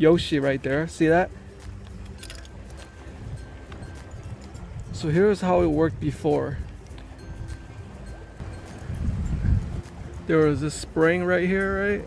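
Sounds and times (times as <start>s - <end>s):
light background music: 0.0s - 12.0s
wind buffeting microphone: 2.5s - 12.0s.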